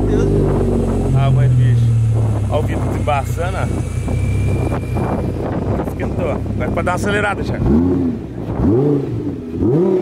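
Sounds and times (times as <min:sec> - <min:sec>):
car engine idling: 0:00.0 - 0:08.6.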